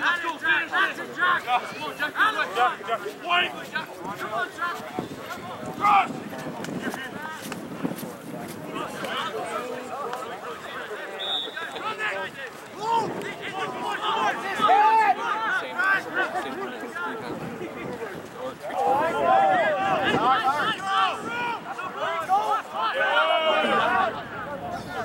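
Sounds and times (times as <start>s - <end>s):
men shouting: 18.7s - 24.2s.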